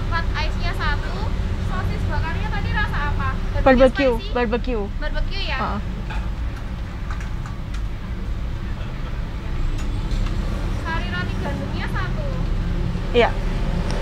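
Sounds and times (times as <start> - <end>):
car idling: 0.0 - 14.0.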